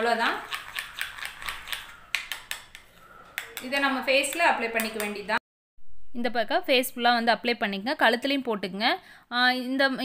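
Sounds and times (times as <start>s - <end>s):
spoon clicking and scraping bowl: 0.4s - 5.2s.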